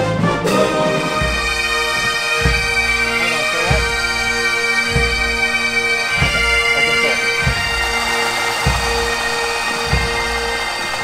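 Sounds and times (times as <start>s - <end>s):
bagpipes playing: 0.0s - 11.0s
bass drum beat: 1.1s - 11.0s.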